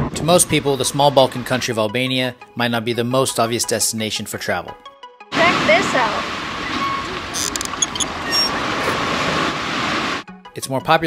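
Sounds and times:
wind: 0:05.3 - 0:10.2
surf on a pebble beach: 0:05.4 - 0:07.3, 0:09.0 - 0:10.2
metallic squeaks: 0:06.6 - 0:09.1.

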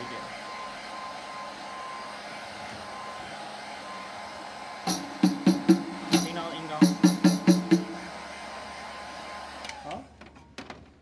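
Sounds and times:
heat gun fan running: 0:00.0 - 0:10.2.

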